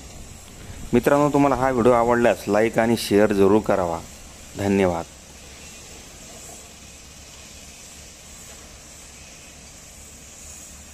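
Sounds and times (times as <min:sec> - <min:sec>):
constant hiss: 0:00.0 - 0:10.9.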